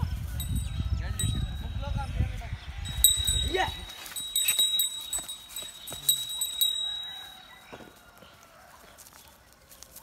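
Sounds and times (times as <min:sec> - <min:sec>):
bull's neck bell ringing: 0:00.3 - 0:02.0, 0:02.9 - 0:08.1.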